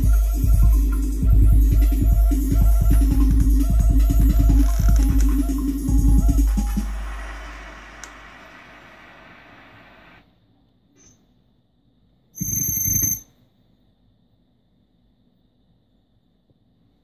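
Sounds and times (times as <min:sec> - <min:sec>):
electronic drum sounds: 0:00.0 - 0:10.2.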